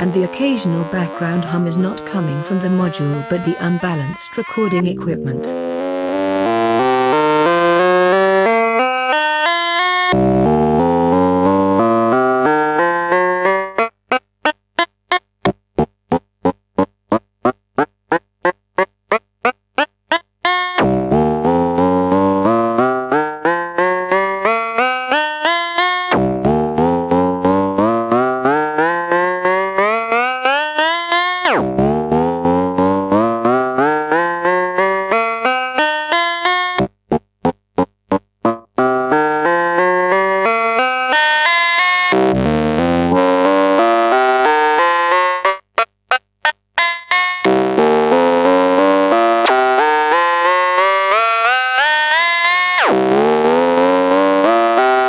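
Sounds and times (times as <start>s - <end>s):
synthesizer playing rising scales: 5.4s - 9.1s.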